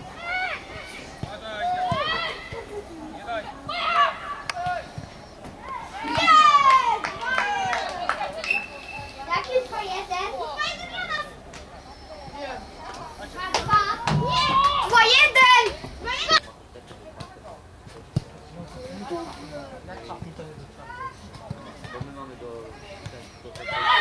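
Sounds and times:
children shouting and calling: 0.0 - 16.5, 23.6 - 24.0.

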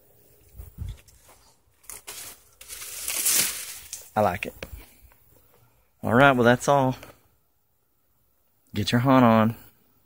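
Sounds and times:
dried stalks and leaves rustling: 0.2 - 5.2.

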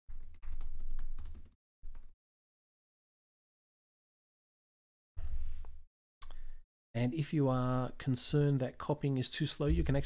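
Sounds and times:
computer keyboard typing: 0.1 - 2.1.

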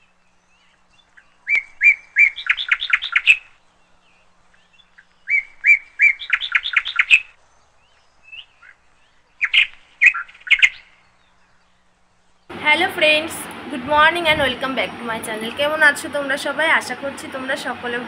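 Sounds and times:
songbird singing: 0.0 - 18.0.

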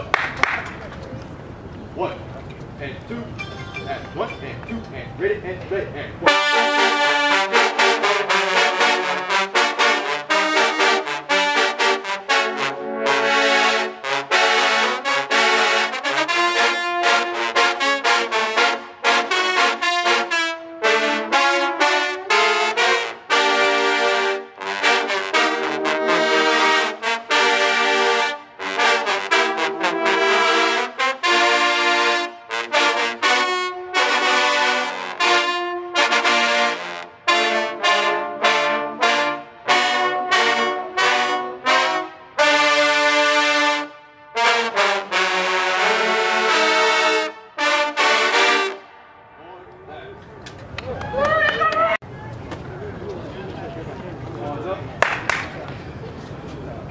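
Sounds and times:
trombones playing chords: 3.1 - 49.4.

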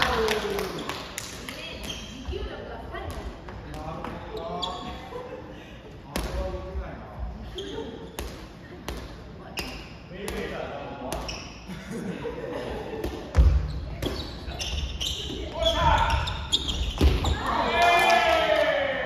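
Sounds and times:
sneakers squeaking on wooden floor: 1.6 - 5.1, 7.4 - 8.2, 9.5 - 10.1, 11.1 - 11.7, 13.2 - 17.6.

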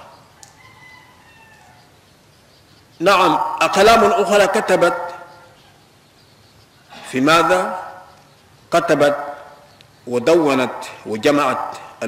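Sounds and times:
drawn-out bird call: 0.0 - 12.0.

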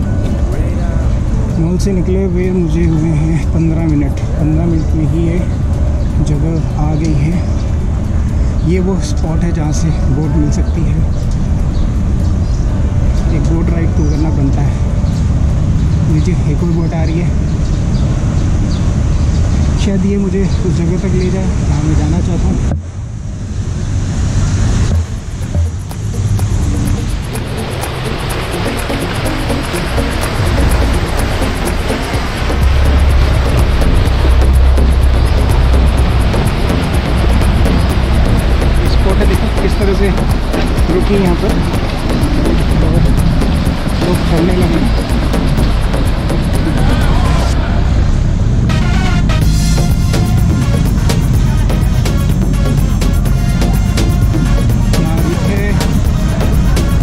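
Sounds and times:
boat engine rumble: 0.0 - 57.0
water churning and splashing: 24.7 - 57.0.

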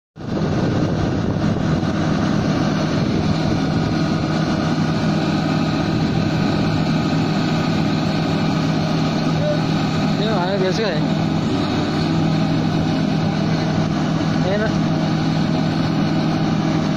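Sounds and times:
excavator diesel engine running: 0.2 - 16.9.

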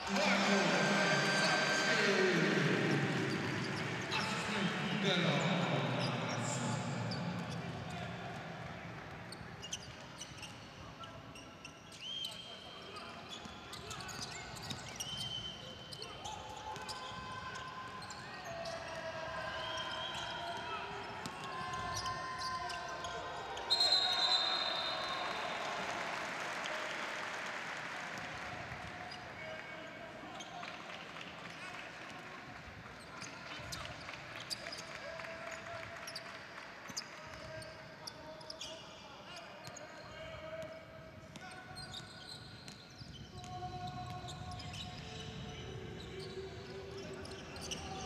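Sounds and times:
players calling out: 0.0 - 8.6
crowd noise: 0.0 - 42.4
sneakers squeaking on hardwood: 41.4 - 45.2.

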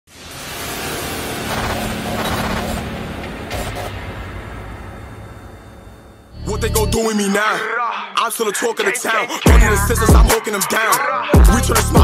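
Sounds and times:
rushing swell of noise: 0.1 - 6.6.

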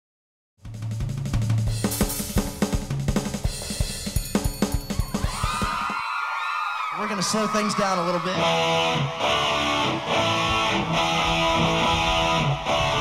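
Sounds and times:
rock drum kit playing: 0.6 - 6.0, 8.9 - 13.0
electric guitar bending tone: 8.4 - 13.0
low bass notes: 9.8 - 13.0.

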